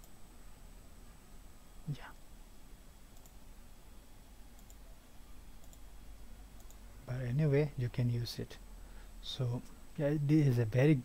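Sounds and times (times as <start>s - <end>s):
low steady hiss: 0.0s - 11.0s.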